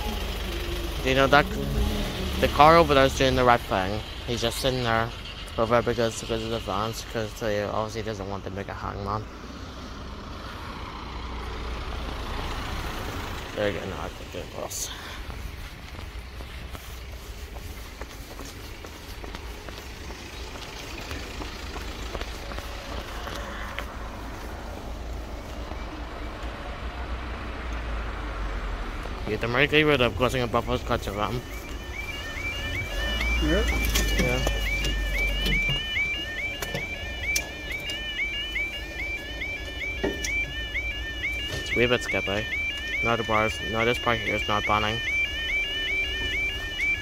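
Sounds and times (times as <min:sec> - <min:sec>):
level crossing alarm warbling: 0:00.0 - 0:09.2, 0:29.3 - 0:47.0
road noise hiss: 0:00.0 - 0:31.8
low vehicle rumble: 0:00.0 - 0:47.0.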